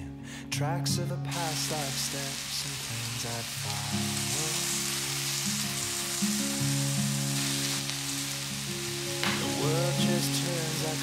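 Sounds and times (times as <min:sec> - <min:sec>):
background music: 0:00.0 - 0:11.0
meat sizzling in a frying pan: 0:01.3 - 0:11.0.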